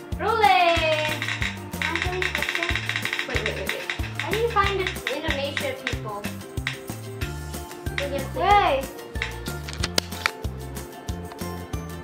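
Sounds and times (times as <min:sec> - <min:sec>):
spinning wheel ticking rapidly: 0:00.7 - 0:07.0.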